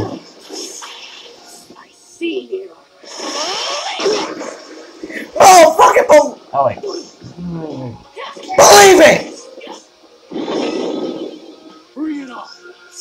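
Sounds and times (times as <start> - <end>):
background music: 0.0 - 13.0
person shouting: 8.6 - 9.3.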